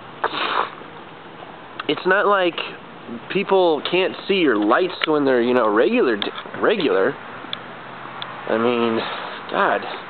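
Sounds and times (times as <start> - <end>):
man sniffing: 0.2 - 0.8, 9.0 - 10.0.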